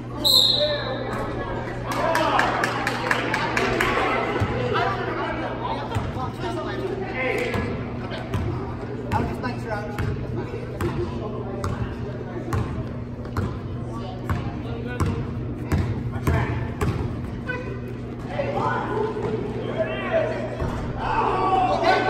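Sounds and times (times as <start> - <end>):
basketball bouncing on gym floor: 10.0 - 10.2, 12.5 - 17.3.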